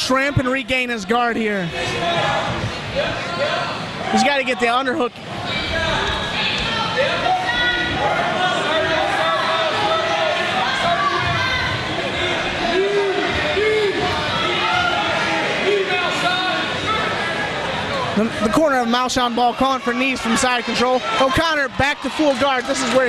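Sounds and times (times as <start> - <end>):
crowd shouting: 0.0 - 23.0.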